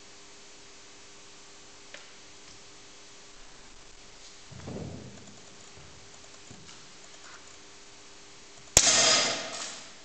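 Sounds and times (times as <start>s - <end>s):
sharp metallic clang: 8.8s - 10.0s.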